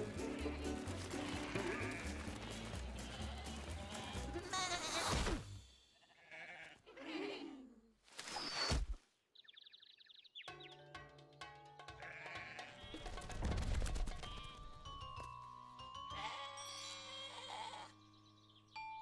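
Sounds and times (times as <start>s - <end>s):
cartoon score music: 0.0s - 4.8s
cartoon sheep bleating: 3.9s - 5.3s, 6.0s - 7.0s, 12.0s - 12.8s, 16.1s - 17.9s.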